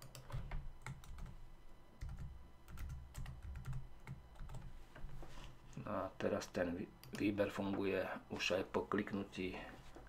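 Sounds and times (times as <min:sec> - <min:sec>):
computer keyboard typing: 0:00.0 - 0:01.4, 0:02.0 - 0:04.7.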